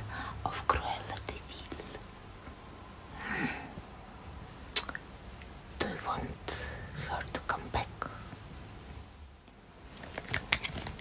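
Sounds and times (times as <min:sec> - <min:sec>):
woman whispering softly: 0:00.4 - 0:02.1, 0:05.8 - 0:08.4.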